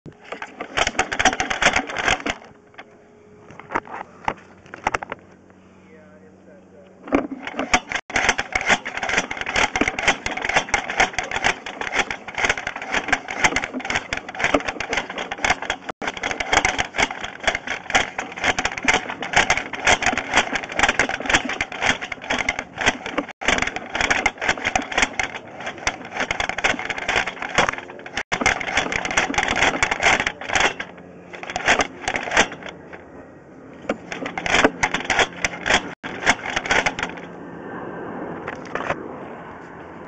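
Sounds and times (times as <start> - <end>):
camera cable rattling and scraping in pipe: 0.1 - 5.2, 7.0 - 33.0, 33.7 - 37.3, 38.5 - 39.0.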